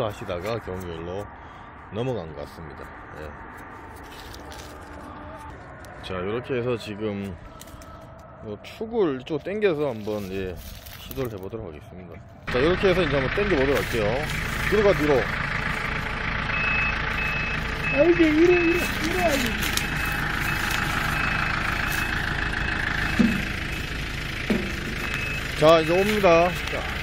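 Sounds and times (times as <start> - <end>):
tractor engine idling: 0.0 - 27.0
backup alarm beeps: 16.5 - 18.9, 19.9 - 23.7, 24.8 - 26.5.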